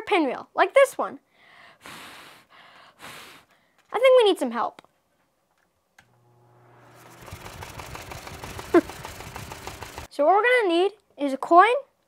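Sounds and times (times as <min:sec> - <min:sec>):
fan blowing air: 0:06.0 - 0:10.1
paper pinwheel fluttering: 0:06.8 - 0:10.1.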